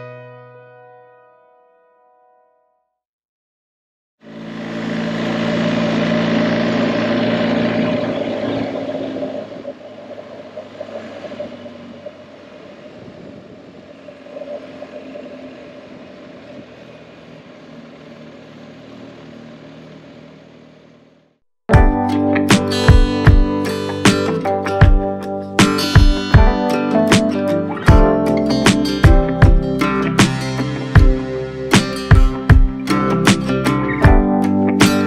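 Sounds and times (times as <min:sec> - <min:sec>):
wind and road noise: 0:04.2 - 0:21.3
motorcycle engine running: 0:04.2 - 0:35.0.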